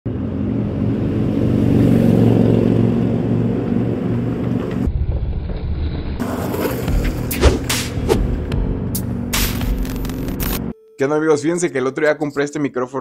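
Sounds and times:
longboard wheels rolling on asphalt: 1.4s - 7.3s.

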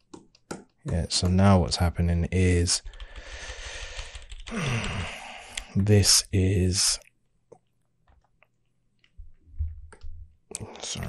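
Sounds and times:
person breathing in: 2.8s - 5.8s
person sighing: 3.2s - 5.8s.

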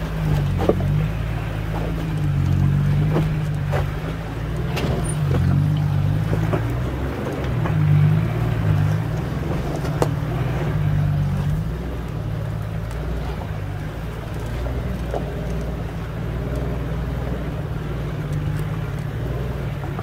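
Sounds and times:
tyres knocking over rocks: 0.0s - 11.9s
vehicle engine at low revs: 0.0s - 20.0s.

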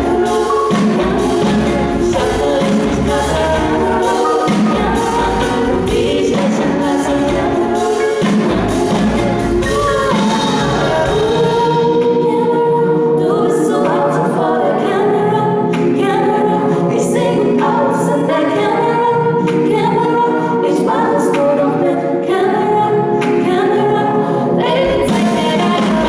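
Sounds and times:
bass and beat: 0.0s - 11.3s
women singing in harmony: 0.0s - 26.0s.

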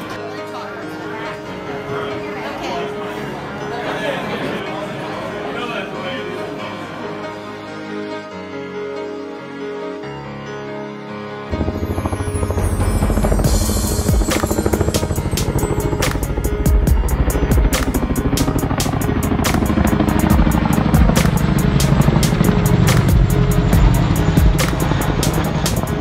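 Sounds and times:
music playing: 0.0s - 26.0s
helicopter rotor beating: 11.5s - 26.0s.

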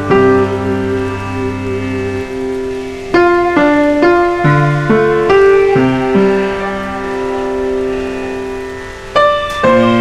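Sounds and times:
piano chord: 0.0s - 10.0s.

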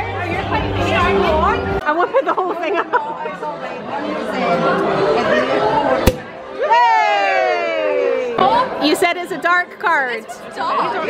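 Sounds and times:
chatter of many voices: 0.0s - 11.0s.

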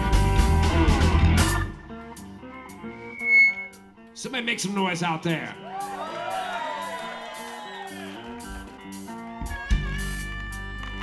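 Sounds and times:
blues band playing loudly: 0.0s - 3.4s, 4.9s - 11.0s
electric guitar single notes: 1.6s - 4.2s.

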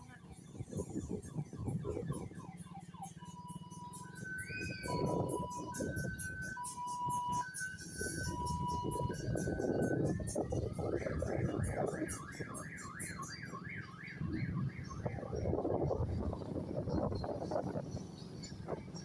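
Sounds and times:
music: 0.0s - 19.0s
siren-like alternating beeps: 0.0s - 19.0s.

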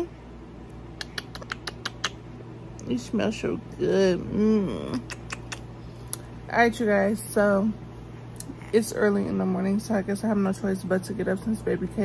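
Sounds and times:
light kissing smacks: 1.0s - 2.3s, 4.9s - 6.3s.

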